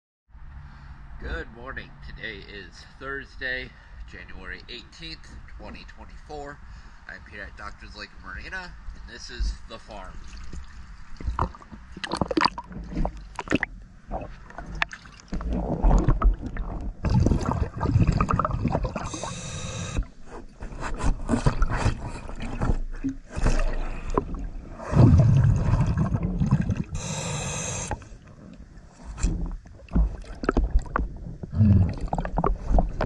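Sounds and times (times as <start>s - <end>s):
knocks and splashes: 10.2s - 19.1s, 21.0s - 26.9s, 29.2s - 33.0s
regulator exhale bubbles gurgling: 11.4s - 20.1s, 23.3s - 28.7s, 29.3s - 33.0s
high hiss of inhalation: 19.1s - 20.0s, 27.0s - 28.1s.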